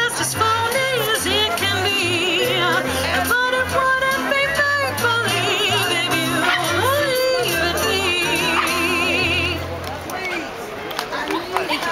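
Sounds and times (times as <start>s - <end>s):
woman singing into a microphone: 0.0s - 9.7s.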